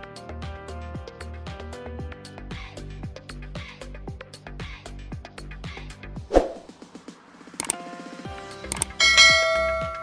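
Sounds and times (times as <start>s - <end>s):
background music with steady beat: 0.0s - 10.0s
mouse clicks: 8.7s - 9.0s
bright bell chime: 9.0s - 10.0s.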